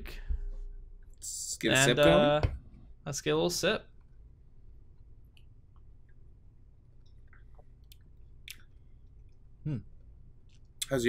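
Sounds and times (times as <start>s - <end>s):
low room hum: 0.0s - 11.0s
people sipping and swallowing: 7.0s - 10.9s.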